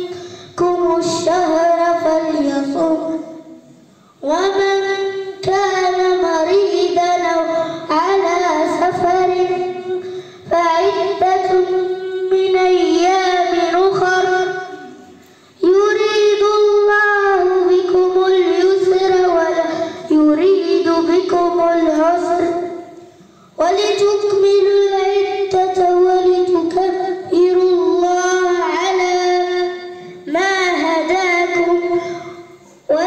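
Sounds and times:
boy chanting recitation: 0.0 - 33.0.

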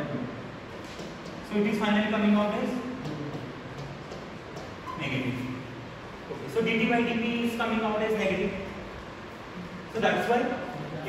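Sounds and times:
classroom room tone: 0.0 - 11.0.

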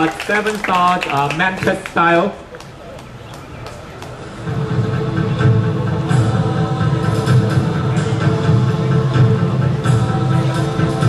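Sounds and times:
low pulsing bass: 4.4 - 11.0.

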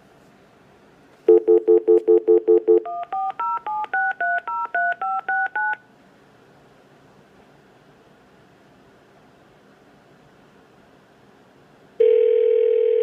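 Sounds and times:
touch-tone dialing digits: 1.3 - 5.8.

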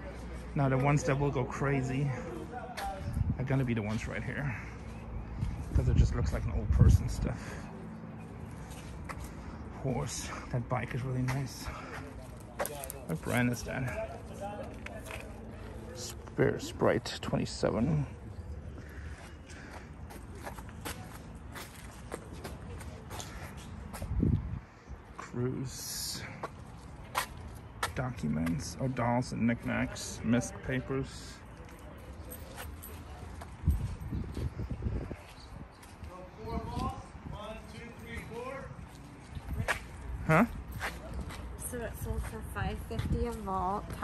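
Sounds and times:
footsteps on hard ground: 18.8 - 24.5.

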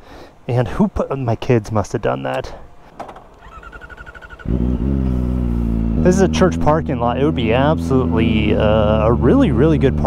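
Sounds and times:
motorcycle engine idling: 3.0 - 9.2
starter motor ticking: 3.3 - 4.9.

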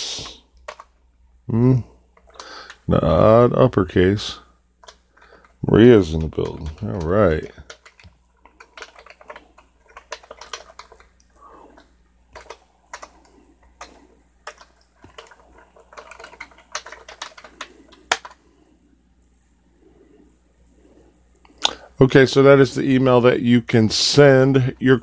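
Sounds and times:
computer keyboard typing: 0.6 - 0.9, 4.8 - 21.9.

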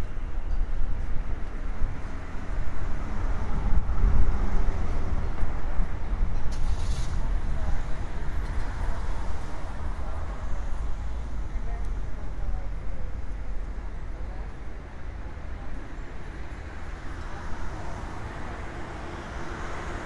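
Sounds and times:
vehicles passing on road: 0.0 - 20.0
passers-by voices: 5.0 - 20.0.

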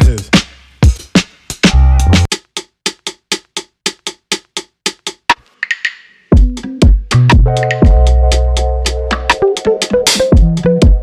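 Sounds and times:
deep bass: 1.7 - 2.3, 7.1 - 9.4.

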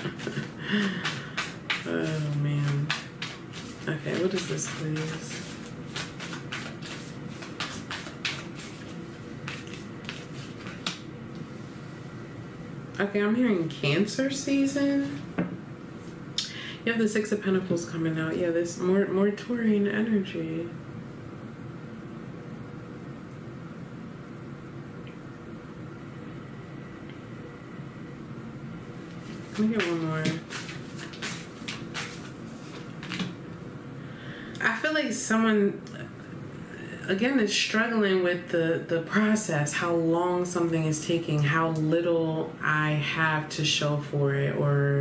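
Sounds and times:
faint steady hum: 0.0 - 45.0
cards being shuffled: 0.1 - 11.0, 29.2 - 33.4.

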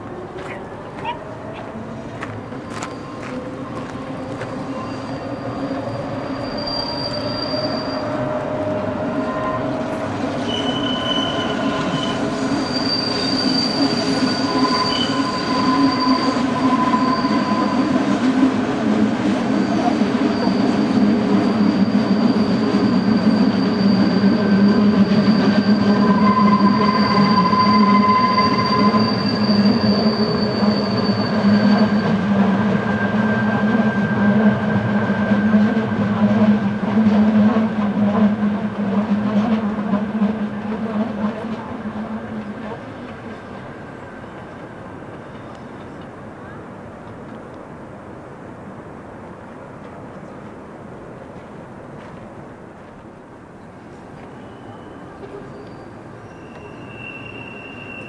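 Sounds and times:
train low rumble: 0.0 - 6.6
train wheels squealing on rails: 0.4 - 46.8, 53.6 - 58.0.

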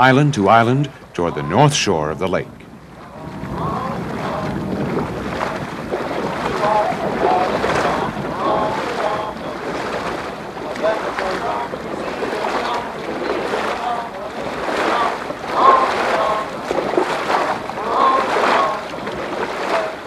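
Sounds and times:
faint voices: 0.0 - 20.0
water washing against hull: 0.0 - 20.0
wind buffeting microphone: 0.0 - 20.0.

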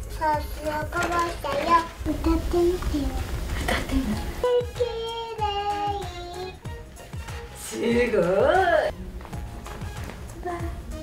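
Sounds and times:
music with steady beat: 3.9 - 11.0
child singing long notes: 4.4 - 6.6.

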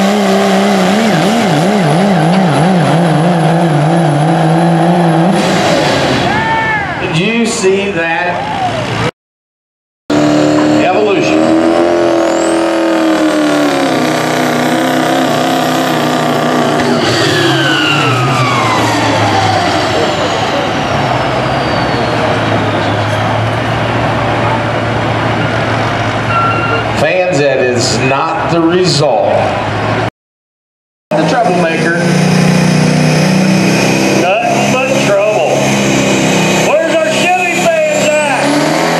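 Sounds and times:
diesel truck engine at full throttle: 0.0 - 9.1, 10.1 - 30.1, 31.1 - 38.9
turbo whistle: 26.3 - 26.9.

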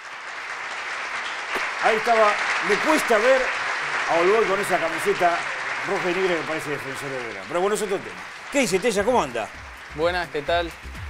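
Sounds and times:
applause: 0.0 - 11.0
man speaking: 4.1 - 10.8.

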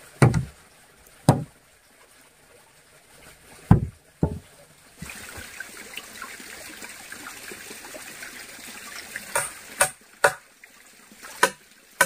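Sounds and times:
running water hiss: 0.0 - 12.0
wooden pole knocking on wood: 0.2 - 0.5, 1.3 - 1.5, 3.7 - 4.5.

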